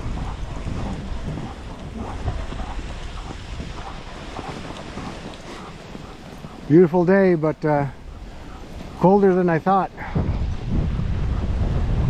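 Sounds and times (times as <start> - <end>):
wind buffeting a microphone: 0.0 - 12.0.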